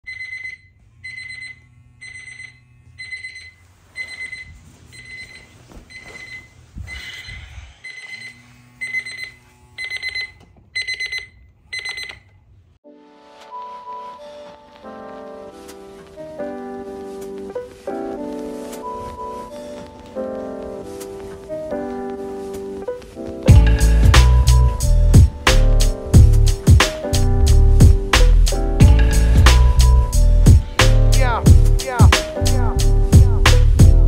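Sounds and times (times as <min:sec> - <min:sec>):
electronic alarm beeping: 0:00.1 - 0:12.3
piano music: 0:12.8 - 0:34.0
rustling: 0:13.4 - 0:23.5.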